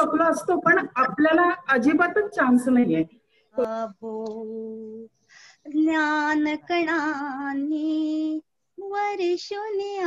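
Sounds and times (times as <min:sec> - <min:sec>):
woman singing with vibrato: 0:05.7 - 0:10.0.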